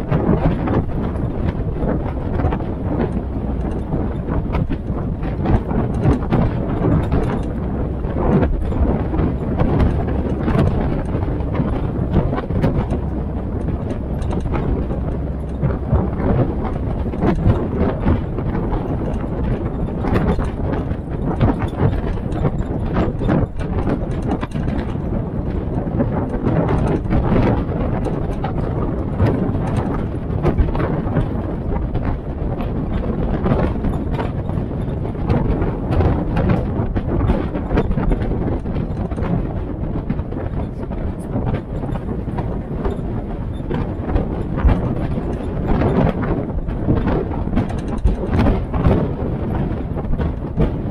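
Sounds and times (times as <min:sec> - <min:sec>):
jeep engine running: 0:00.0 - 0:50.9
rattles of body and tyres on gravel: 0:00.0 - 0:50.9.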